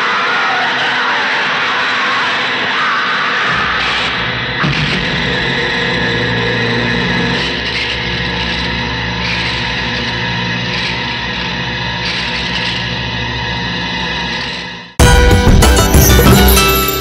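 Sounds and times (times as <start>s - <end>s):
dramatic action film score: 0.0s - 17.0s
bright crashes: 15.0s - 17.0s.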